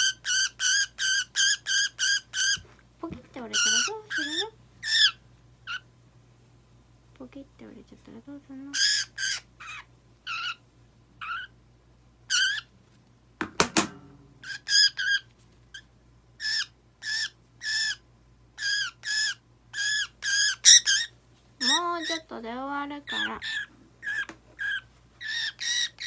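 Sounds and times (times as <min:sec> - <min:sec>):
budgerigar squawking: 0:00.0 - 0:02.6, 0:03.5 - 0:05.9, 0:08.7 - 0:10.6, 0:11.2 - 0:11.5, 0:12.3 - 0:12.7, 0:14.4 - 0:15.2, 0:16.4 - 0:18.0, 0:18.6 - 0:22.3, 0:23.1 - 0:26.0.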